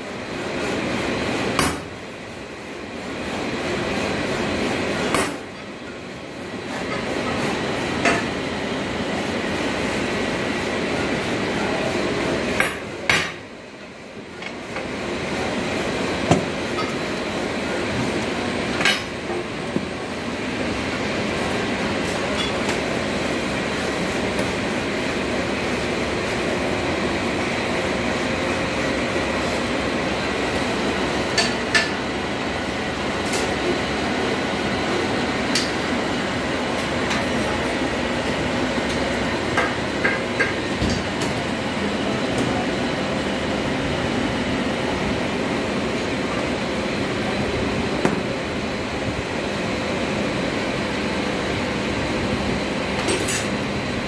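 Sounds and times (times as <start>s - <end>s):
workshop machinery hum: 0.0s - 54.0s.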